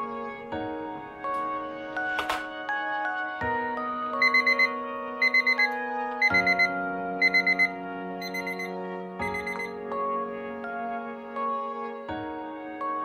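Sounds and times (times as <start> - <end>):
timer beeping: 4.2 - 9.8.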